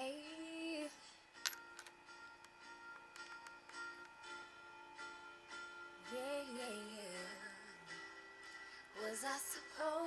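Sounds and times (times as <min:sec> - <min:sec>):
faint instrumental music: 0:00.0 - 0:10.0.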